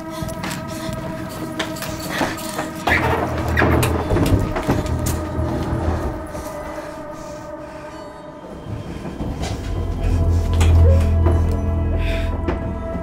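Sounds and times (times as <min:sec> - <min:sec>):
dark rumbling drone: 0:00.0 - 0:13.0
metallic clatter and screech: 0:01.8 - 0:05.3.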